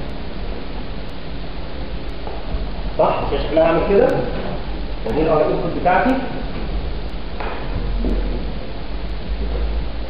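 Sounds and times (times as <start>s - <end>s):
low hum: 0.0s - 10.0s
steady hiss: 0.0s - 10.0s.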